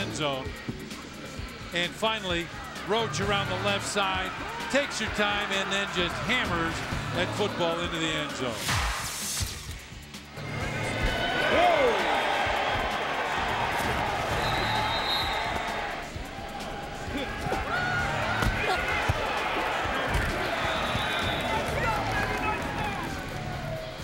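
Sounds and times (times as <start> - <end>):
background music: 0.0 - 24.0
players and crowd shouting: 1.8 - 8.6, 10.5 - 24.0
thuds of tackles: 18.3 - 22.4.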